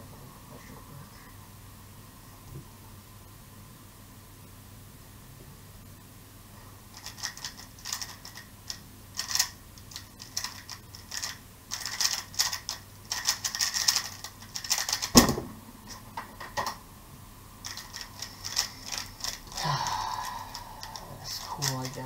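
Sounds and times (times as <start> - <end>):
puzzle cube clicking turns: 6.9 - 15.3, 17.6 - 19.6, 20.2 - 22.0.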